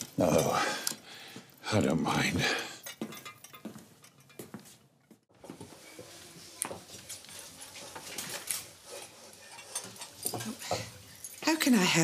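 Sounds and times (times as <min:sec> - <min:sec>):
silverware clinking: 0:02.8 - 0:04.5, 0:08.5 - 0:11.7.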